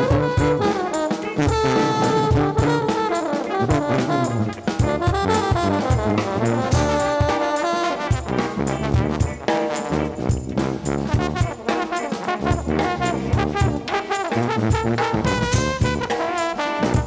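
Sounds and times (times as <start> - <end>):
drum kit beat: 0.0 - 17.0
french horn and trombones: 0.0 - 17.0.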